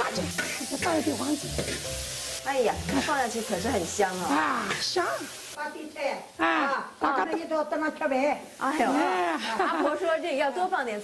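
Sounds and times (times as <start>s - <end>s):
metal spatula stirring: 0.0s - 5.0s
pork sizzling in a wok: 0.0s - 11.0s.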